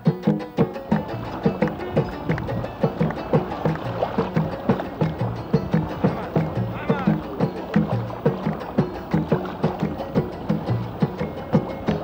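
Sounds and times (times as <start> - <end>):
music with steady low drum rhythm: 0.0 - 12.0.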